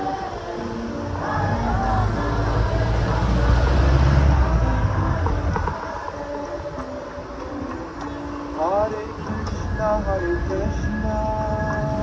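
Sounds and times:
group chanting: 0.0 - 6.5
diesel engine rumbling: 0.0 - 12.0
traffic noise: 0.0 - 12.0.

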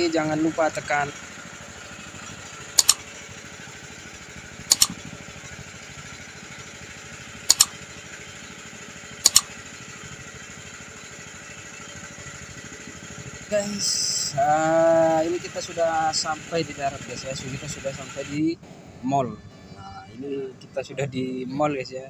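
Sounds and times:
motorboat engine droning: 0.0 - 22.0
double mouse-click sound effects: 2.8 - 3.0, 4.7 - 5.0, 7.5 - 7.7, 9.3 - 9.5.

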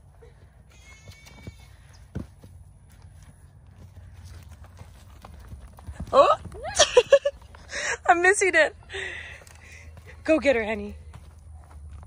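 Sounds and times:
hooves thudding on sandy ground: 0.0 - 12.0.

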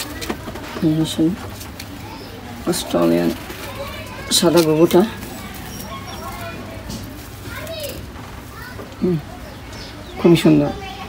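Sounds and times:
faint children's chatter: 0.0 - 11.0.

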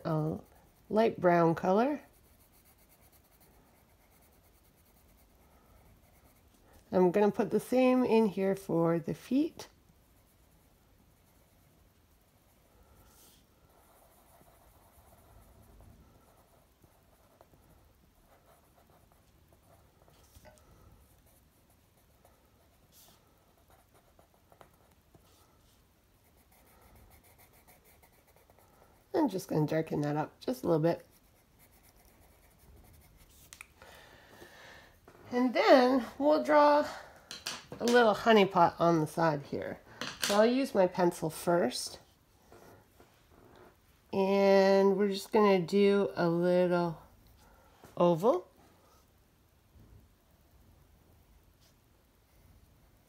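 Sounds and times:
pencil scratching on paper: 0.0 - 33.6.

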